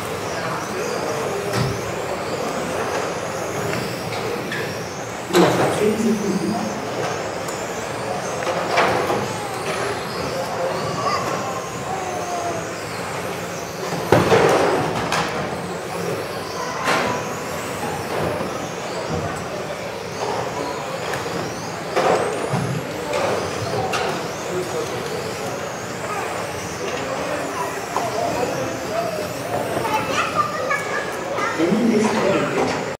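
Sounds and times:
echoing hall noise: 0:00.0 - 0:32.9
radio-controlled car motors whining: 0:00.0 - 0:32.9
voices: 0:00.0 - 0:32.9.

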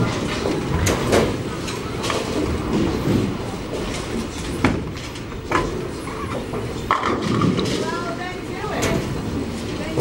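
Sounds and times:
bowling ball rolling: 0:00.0 - 0:07.9
people talking: 0:07.7 - 0:09.1, 0:09.7 - 0:10.0.

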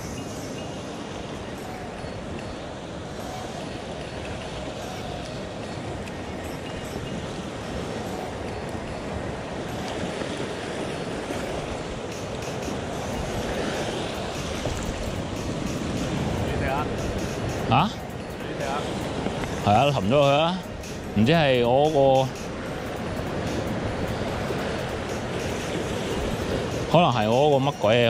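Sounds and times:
ocean surf washing against rocks: 0:00.0 - 0:28.0.

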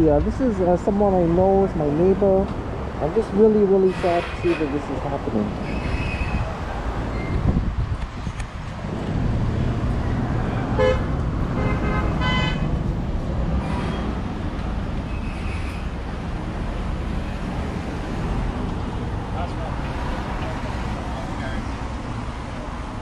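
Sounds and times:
street traffic rumble: 0:00.0 - 0:23.0
vehicle horn: 0:10.8 - 0:12.7.

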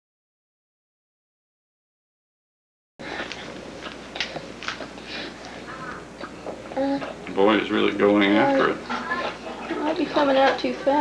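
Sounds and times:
camcorder hiss: 0:03.0 - 0:11.0.

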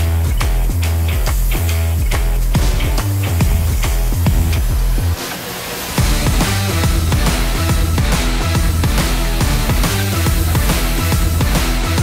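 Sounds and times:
heavy bass line: 0:00.0 - 0:05.2, 0:05.8 - 0:12.0
rock music: 0:00.0 - 0:12.0
steady drum beat: 0:00.0 - 0:12.0.

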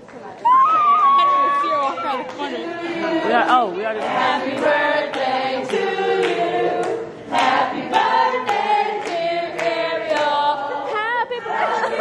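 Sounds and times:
voices singing together: 0:00.9 - 0:12.0.

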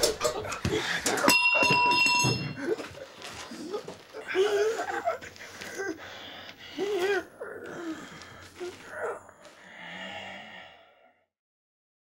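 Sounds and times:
metallic bell-like ring: 0:01.2 - 0:02.8.

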